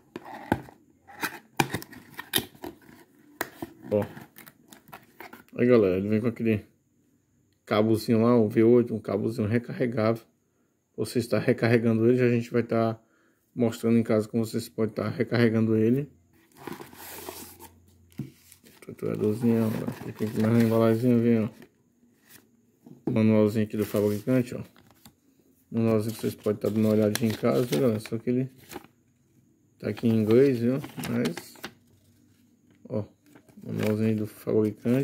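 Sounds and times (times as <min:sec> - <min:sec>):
paper rustling: 0:16.6 - 0:21.0, 0:23.8 - 0:25.1, 0:25.9 - 0:28.9.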